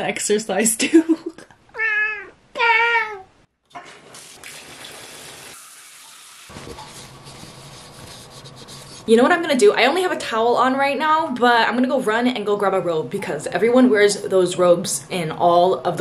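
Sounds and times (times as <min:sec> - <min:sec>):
cat meowing: 0:01.8 - 0:03.3
water running from a tap: 0:04.0 - 0:06.9.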